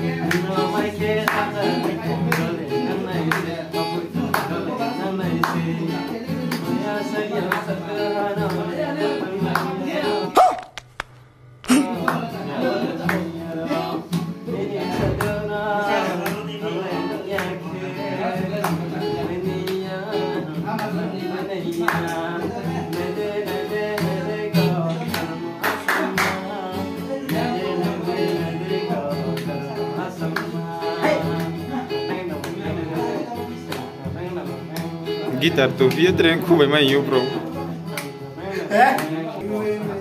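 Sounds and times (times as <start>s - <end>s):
hand claps: 0.0s - 7.8s, 8.4s - 13.4s, 15.0s - 15.5s, 16.1s - 17.6s, 18.4s - 39.4s
man singing: 0.0s - 10.5s, 11.7s - 40.0s
acoustic guitar strumming: 0.0s - 40.0s.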